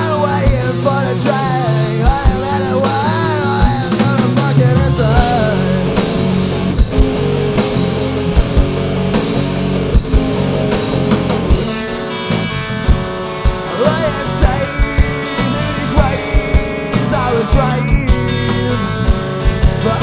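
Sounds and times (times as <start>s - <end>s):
bending melodic guitar lines: 0.0s - 20.0s
live rock band playing: 0.0s - 20.0s.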